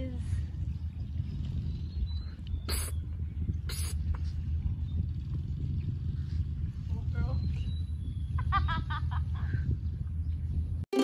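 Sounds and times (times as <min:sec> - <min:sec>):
steady low rumble: 0:00.0 - 0:10.9.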